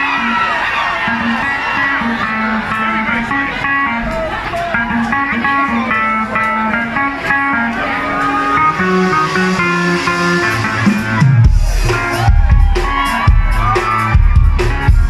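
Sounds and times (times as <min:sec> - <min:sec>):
live band music: 0:00.0 - 0:15.0
plucked guitar notes: 0:00.0 - 0:15.0.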